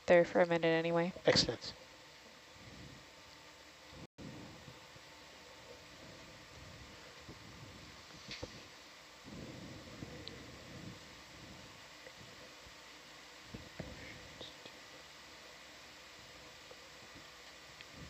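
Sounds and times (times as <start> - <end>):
low steady hiss: 0.0 - 18.0.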